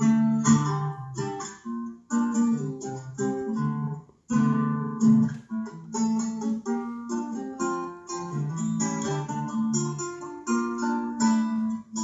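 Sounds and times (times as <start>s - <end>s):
acoustic guitar plucked notes: 0.0s - 12.0s.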